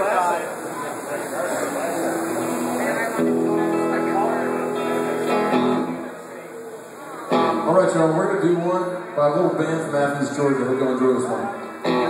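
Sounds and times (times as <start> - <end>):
electric guitar chord ringing: 2.0 - 6.2, 7.3 - 7.8.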